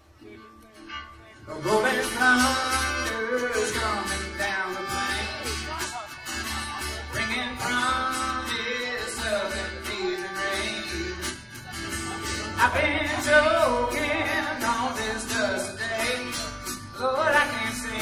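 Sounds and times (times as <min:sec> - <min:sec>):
acoustic guitar: 0:00.0 - 0:18.0
upright bass: 0:00.1 - 0:18.0.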